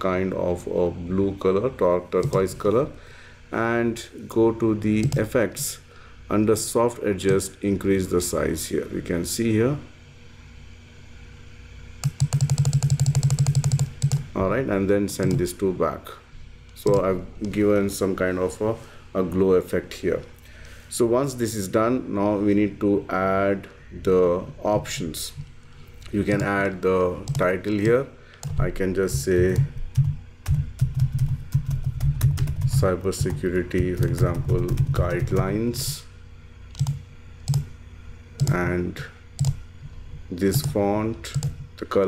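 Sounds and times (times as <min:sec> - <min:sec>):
faint steady hum: 0:00.0 - 0:42.0
computer mouse clicking rapidly: 0:02.2 - 0:02.7, 0:04.9 - 0:05.4, 0:12.0 - 0:14.3, 0:15.2 - 0:15.6, 0:16.7 - 0:17.9, 0:25.3 - 0:35.8, 0:36.7 - 0:37.7, 0:38.4 - 0:38.7, 0:39.4 - 0:39.6, 0:40.4 - 0:41.8
keyboard typing: 0:02.2 - 0:02.7, 0:05.0 - 0:05.3, 0:12.0 - 0:14.3, 0:15.2 - 0:15.5, 0:26.1 - 0:35.6, 0:36.7 - 0:37.7, 0:38.4 - 0:38.6, 0:39.4 - 0:39.6, 0:40.5 - 0:41.6.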